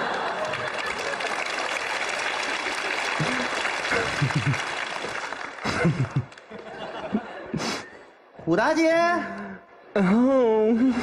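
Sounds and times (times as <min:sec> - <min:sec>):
audience laughing: 0:00.0 - 0:01.7, 0:03.1 - 0:07.8
audience applauding: 0:00.0 - 0:06.9.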